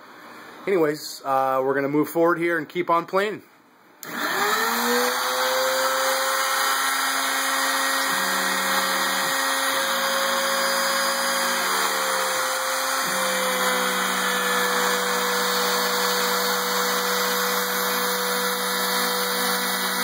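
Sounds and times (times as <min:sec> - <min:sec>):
router spindle whining while cutting: 0:04.0 - 0:20.0.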